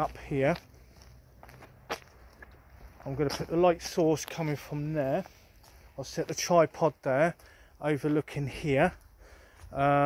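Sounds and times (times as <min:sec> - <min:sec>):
footsteps on hard path: 0:00.0 - 0:10.0.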